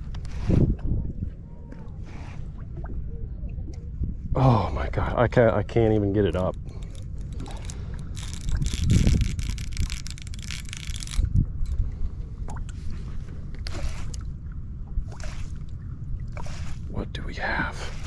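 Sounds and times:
steady low rumble: 0.0s - 18.0s
water sloshing around boat: 0.0s - 18.0s.

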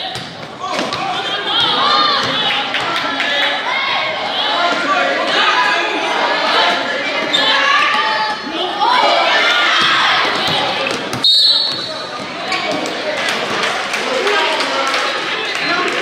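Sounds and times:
spectators' voices: 0.0s - 16.0s
referee's whistle: 11.2s - 12.1s.

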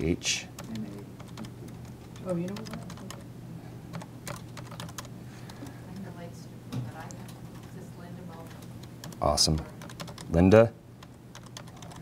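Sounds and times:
computer keyboard typing: 0.5s - 3.2s, 3.9s - 5.7s, 8.4s - 12.0s.

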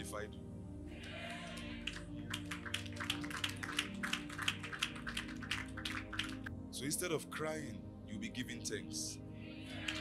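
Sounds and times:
congregation clapping: 1.0s - 6.5s, 9.7s - 10.0s
keyboard music chords: 2.0s - 8.8s.

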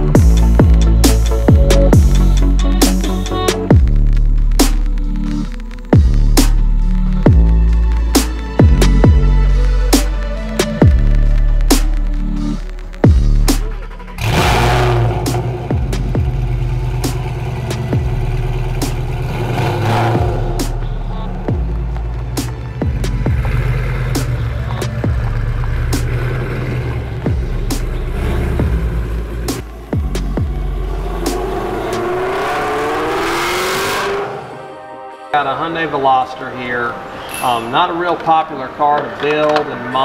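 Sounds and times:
background music with steady beat: 0.0s - 40.0s
car engine revving: 10.8s - 34.9s.

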